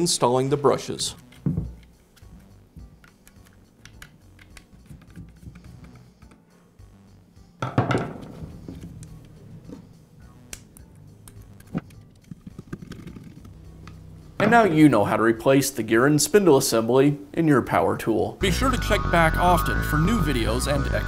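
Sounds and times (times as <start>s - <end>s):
soft background music: 0.0s - 21.0s.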